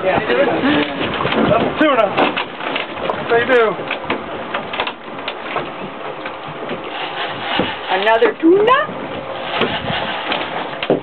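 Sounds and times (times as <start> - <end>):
sea noise: 0.0 - 11.0.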